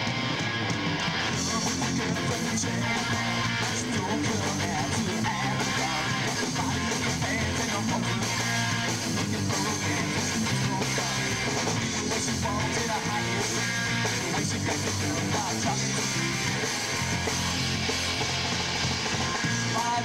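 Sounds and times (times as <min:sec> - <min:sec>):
bass guitar: 0:00.0 - 0:20.0
drum kit: 0:00.0 - 0:20.0
strummed electric guitars: 0:00.0 - 0:20.0.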